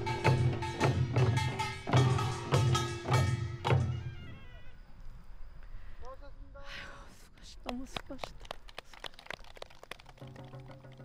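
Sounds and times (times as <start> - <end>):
sharp percussion strikes: 0.0 - 4.1.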